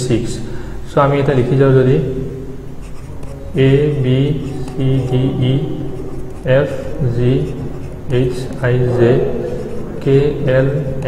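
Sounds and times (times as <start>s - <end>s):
stylus scratching on pen tablet: 2.8s - 11.0s.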